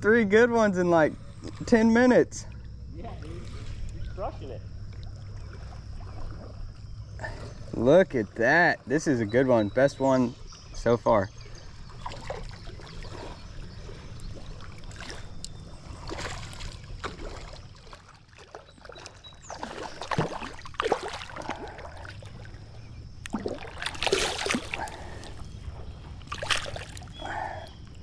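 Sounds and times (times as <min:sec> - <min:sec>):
fish splashing in water: 0:11.8 - 0:27.8.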